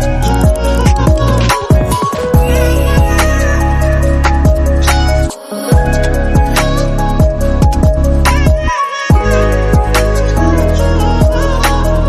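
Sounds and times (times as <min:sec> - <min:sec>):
electronic beat music: 0:00.0 - 0:12.0.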